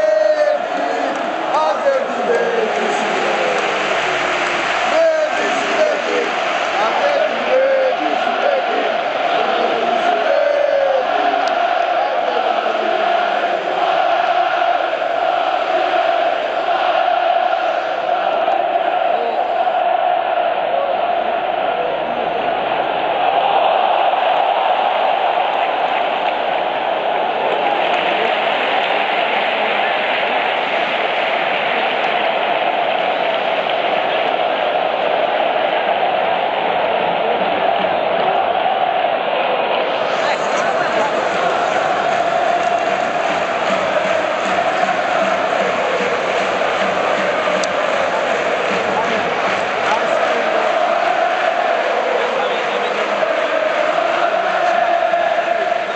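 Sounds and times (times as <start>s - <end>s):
stadium crowd chanting: 0.0s - 55.9s.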